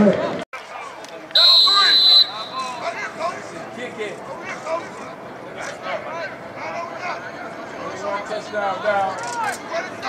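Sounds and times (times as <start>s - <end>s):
murmur of voices and shouts: 0.0s - 10.0s
referee's whistle blast: 1.4s - 2.8s.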